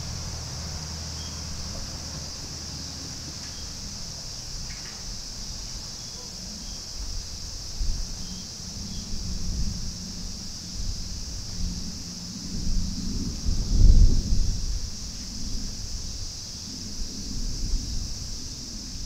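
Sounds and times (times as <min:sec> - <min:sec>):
steady high hiss: 0:00.0 - 0:19.0
wind buffeting microphone: 0:06.9 - 0:19.0.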